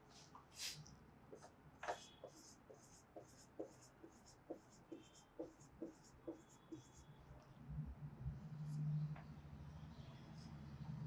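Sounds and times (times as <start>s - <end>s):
marker writing on whiteboard: 1.3s - 7.5s.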